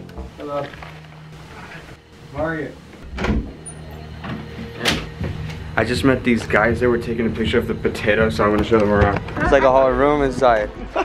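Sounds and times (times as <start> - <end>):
door opening clunk: 3.0 - 5.7.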